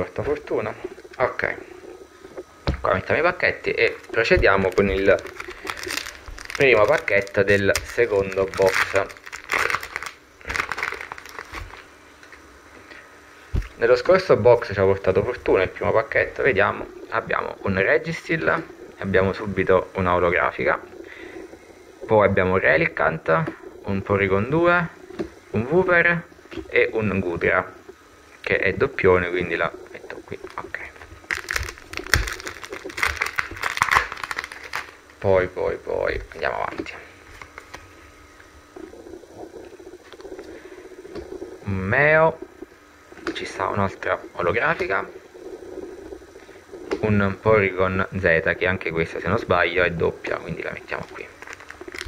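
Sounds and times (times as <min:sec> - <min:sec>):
foil wrapper crinkling: 0:03.9 - 0:11.9, 0:30.4 - 0:35.2, 0:37.3 - 0:37.9, 0:50.9 - 0:52.0
cards rustling: 0:04.0 - 0:11.9, 0:31.3 - 0:35.1, 0:51.1 - 0:52.0.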